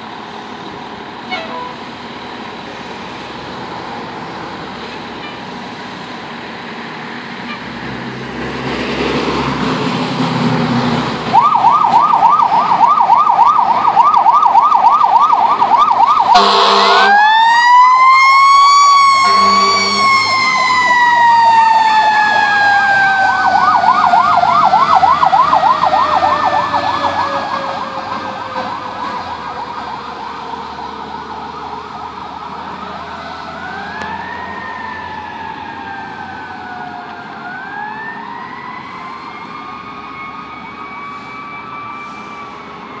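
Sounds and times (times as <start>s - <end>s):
fire truck siren wailing: 0.0s - 43.0s
fast siren yelp: 11.3s - 43.0s.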